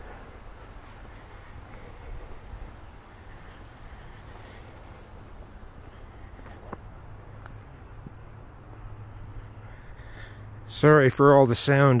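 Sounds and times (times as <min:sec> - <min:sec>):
person breathing while walking: 0:00.0 - 0:10.7
steady low hiss: 0:00.0 - 0:12.0.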